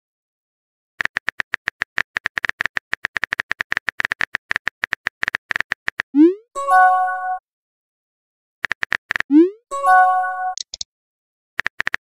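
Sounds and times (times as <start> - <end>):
keyboard tap clicks: 10.6 - 10.8.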